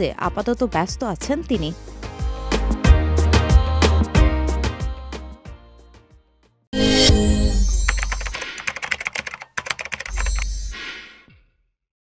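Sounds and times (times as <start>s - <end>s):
rapid clicks like keyboard typing: 7.7s - 10.7s.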